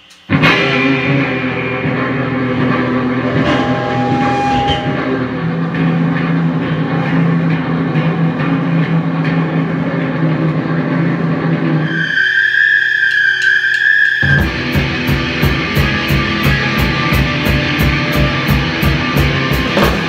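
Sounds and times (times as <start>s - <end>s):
drum kit: 0.0s - 9.6s, 14.2s - 20.0s
distorted electric guitars: 0.0s - 20.0s
high steady squealing tone: 1.9s - 6.0s, 11.8s - 15.1s.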